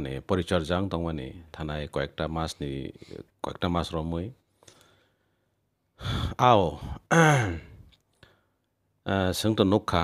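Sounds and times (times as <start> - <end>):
man making breathy vocal sounds: 6.0 - 7.9.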